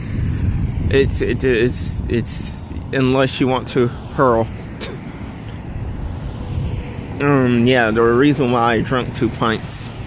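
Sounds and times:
road traffic rush: 0.0s - 10.0s.

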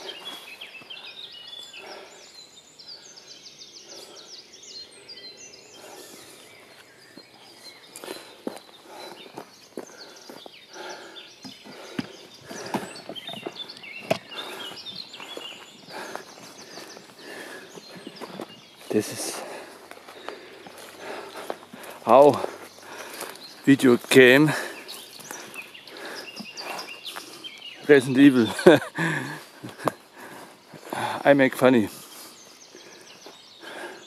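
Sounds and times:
footsteps and rustling on forest floor: 0.0s - 34.0s
small birds chirping: 0.0s - 34.0s.

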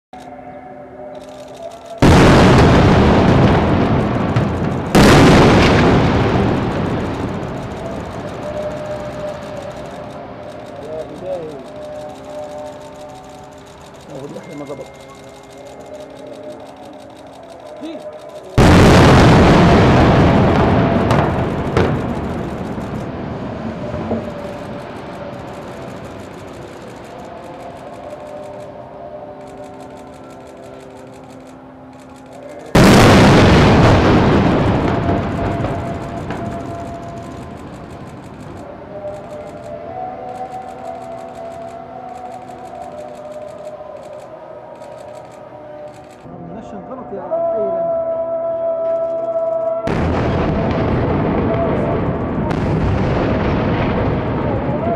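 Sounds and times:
explosion booms: 2.0s - 9.5s, 18.6s - 24.7s, 32.8s - 38.1s, 49.9s - 54.9s.

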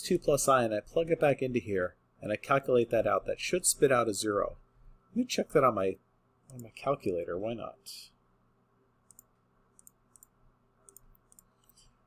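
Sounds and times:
computer mouse clicks: 6.5s - 6.7s, 9.0s - 12.0s.

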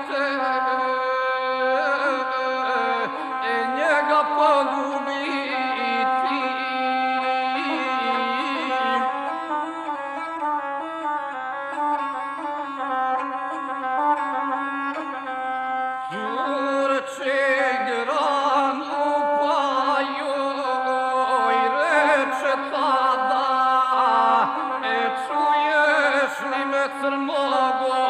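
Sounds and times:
bowed one-string fiddle: 0.0s - 28.0s.

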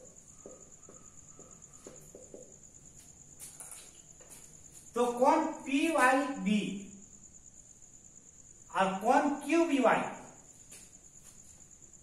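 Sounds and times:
cricket trilling: 0.0s - 12.0s.

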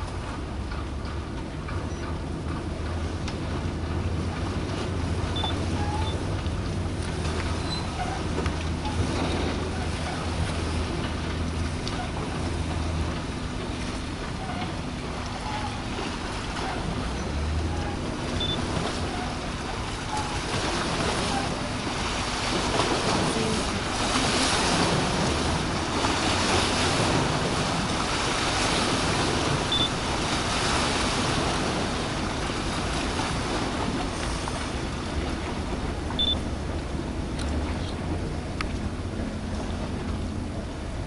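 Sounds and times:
moving water: 0.0s - 41.0s
wind: 0.0s - 41.0s.

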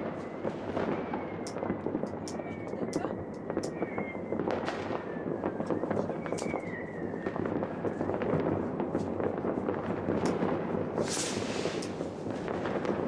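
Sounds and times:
fireworks and firecrackers crackling: 0.0s - 13.0s.

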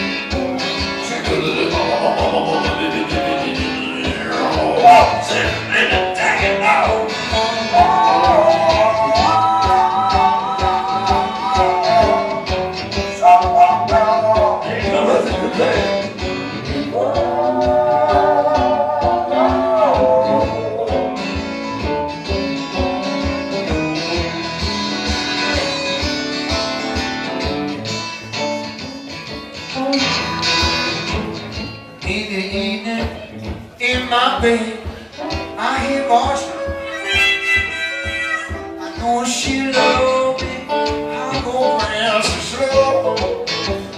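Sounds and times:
electric and acoustic guitars: 0.0s - 43.9s
steady low beat: 1.0s - 7.1s.

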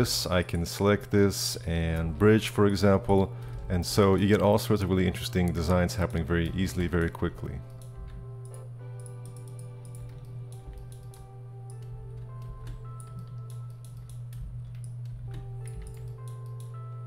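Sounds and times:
soft background music: 0.0s - 17.0s
keyboard and mouse clicks: 5.4s - 17.0s.

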